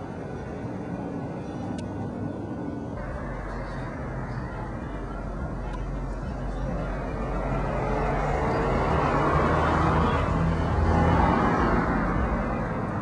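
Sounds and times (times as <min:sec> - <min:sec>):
car passing: 0:02.6 - 0:13.0.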